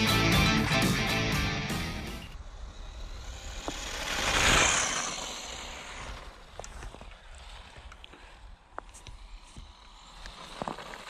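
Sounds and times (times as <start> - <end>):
rc car motor and tyres on snow: 0.0 - 11.0.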